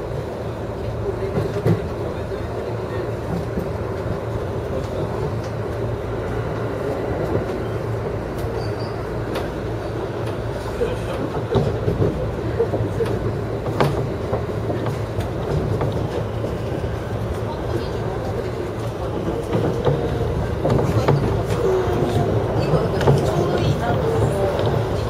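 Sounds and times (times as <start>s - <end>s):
train wheels rumbling on rail: 0.0s - 25.0s.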